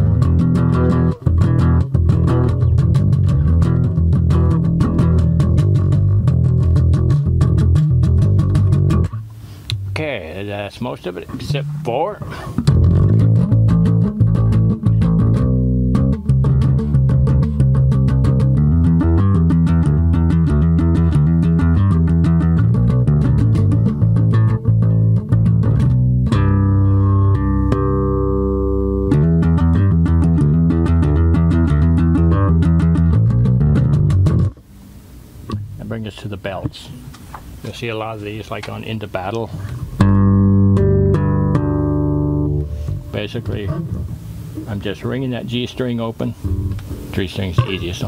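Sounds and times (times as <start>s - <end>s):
electric bass playing heavy metal: 0.0s - 34.6s, 38.2s - 48.0s.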